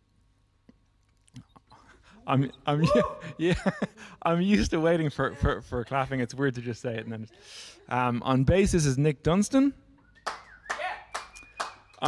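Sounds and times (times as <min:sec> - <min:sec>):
people clapping hands: 0:10.2 - 0:12.0.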